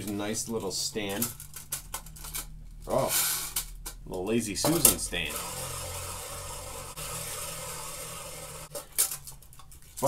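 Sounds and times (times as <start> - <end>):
rotary tool grinding wood: 5.3 - 8.8.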